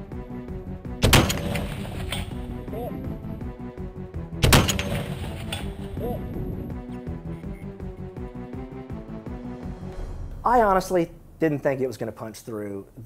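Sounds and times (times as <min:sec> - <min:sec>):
rifle shots with echo: 0:01.0 - 0:02.3, 0:04.4 - 0:05.7.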